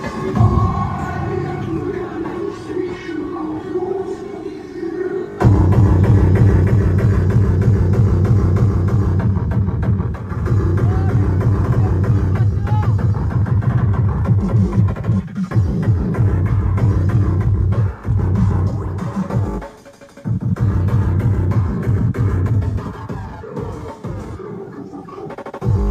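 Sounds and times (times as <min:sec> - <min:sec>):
loud techno through speakers: 0:00.0 - 0:25.9
distorted bass kick: 0:00.3 - 0:01.4, 0:05.4 - 0:19.6, 0:20.4 - 0:23.0, 0:25.6 - 0:25.9.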